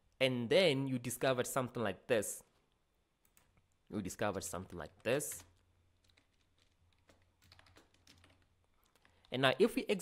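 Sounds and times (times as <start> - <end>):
keystrokes on computer keyboard: 3.2 - 3.7, 4.6 - 9.4.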